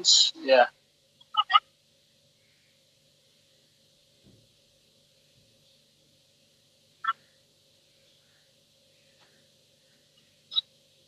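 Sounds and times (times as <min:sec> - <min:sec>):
faint low thump: 0:04.2 - 0:04.5.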